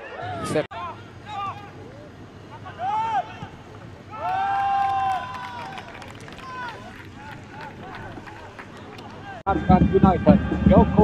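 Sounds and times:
players shouting: 0.7 - 9.5.

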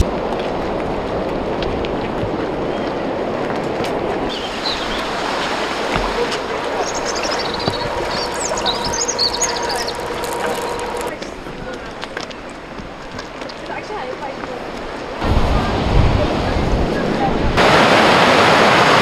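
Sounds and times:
river rushing: 0.0 - 19.0
small birds chirping: 4.3 - 14.1.

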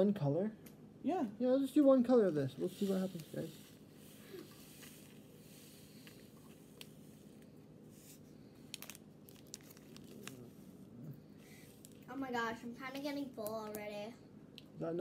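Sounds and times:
plastic baggie crinkling: 8.6 - 10.6.

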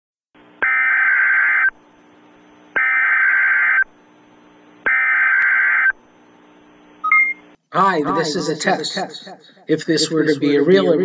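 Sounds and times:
screeching digital data tones: 0.6 - 1.7, 2.8 - 3.9, 4.9 - 6.0.

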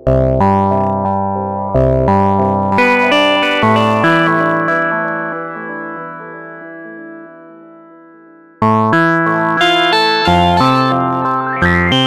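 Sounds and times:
synthesizer note with echo: 0.7 - 12.0.

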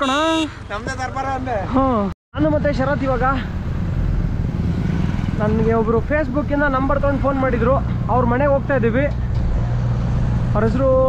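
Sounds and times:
wind and road noise: 0.0 - 11.0
motorcycle passing: 2.6 - 11.0
car passing: 2.7 - 11.0.

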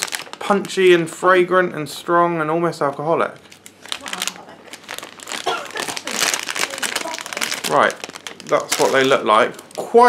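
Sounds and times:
plastic bag crinkling: 0.0 - 1.3, 3.2 - 10.0.

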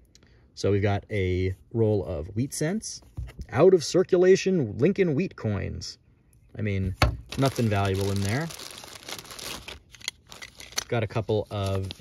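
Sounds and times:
plastic bag crinkling: 7.3 - 12.0.

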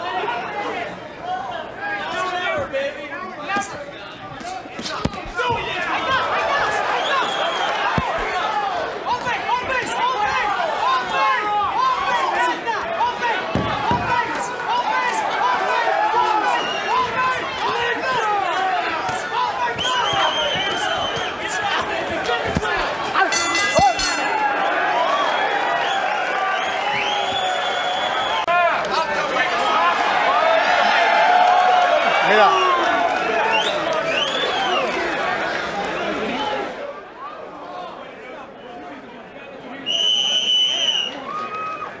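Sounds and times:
crowd shouting and cheering: 0.0 - 42.0
steady high tone: 23.2 - 24.5.

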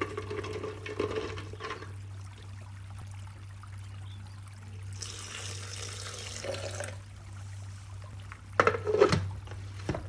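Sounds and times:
steady low hum: 0.0 - 10.0
water pouring into blender jar: 5.0 - 7.0.

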